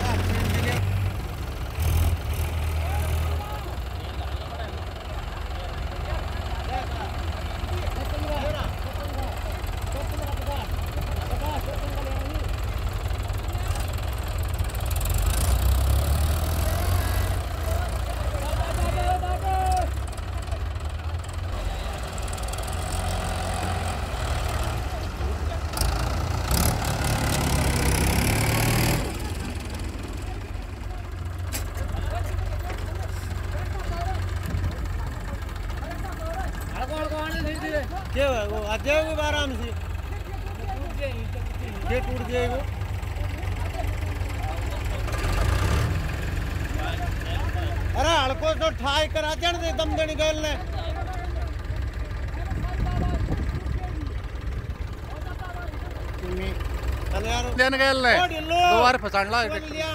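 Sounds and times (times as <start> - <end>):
diesel tractor engines rumbling: 0.0 - 59.9
men calling out: 16.3 - 26.7, 27.3 - 45.5, 46.6 - 59.9.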